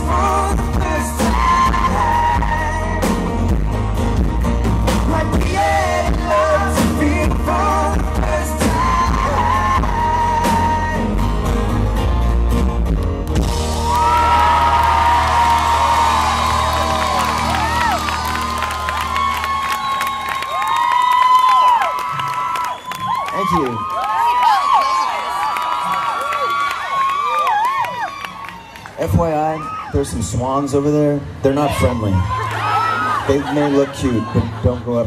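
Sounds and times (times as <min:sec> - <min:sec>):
crowd cheering and screaming: 0:13.4 - 0:30.3, 0:31.4 - 0:35.0.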